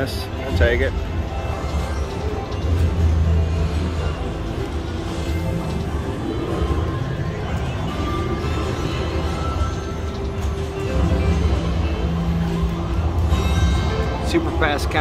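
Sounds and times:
slot machine celebration music: 0.0 - 15.0.

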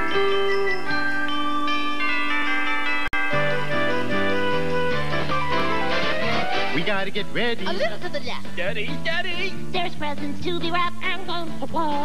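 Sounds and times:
instrumental christmas song intro: 0.0 - 11.9.

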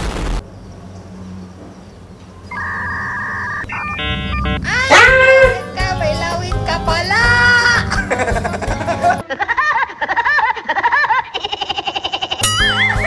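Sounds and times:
loud explosion: 0.0 - 0.4
high wavering whine: 2.5 - 4.7
stepped electronic blips: 2.5 - 4.7
two-tone electronic beep: 2.5 - 4.7.

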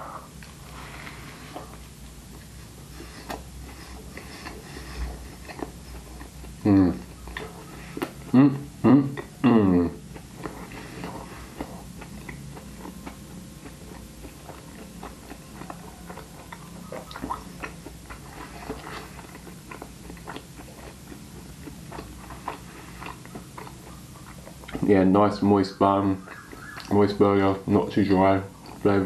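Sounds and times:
person chewing with mouth full: 0.0 - 25.0, 26.2 - 27.2, 27.8 - 29.0.

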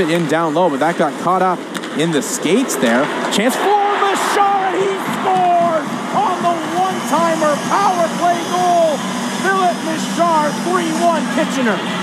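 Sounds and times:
sports commentator calling a goal: 0.0 - 11.8
arena crowd noise: 0.0 - 12.0.

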